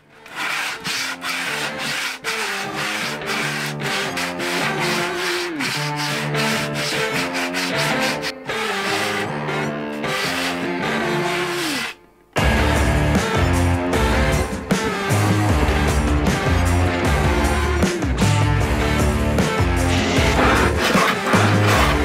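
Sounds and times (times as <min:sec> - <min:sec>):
background music: 0:00.0 - 0:22.0
sanding block on plywood: 0:00.3 - 0:09.2, 0:10.0 - 0:11.9.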